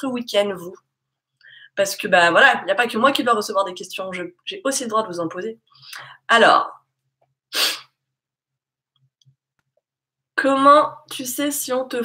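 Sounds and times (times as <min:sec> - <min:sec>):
woman's sharp breath: 0:01.4 - 0:01.8, 0:07.6 - 0:07.9.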